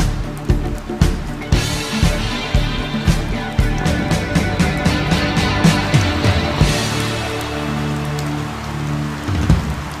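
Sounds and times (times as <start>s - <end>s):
rain falling: 0.0s - 10.0s
sustained music chord: 1.6s - 9.2s.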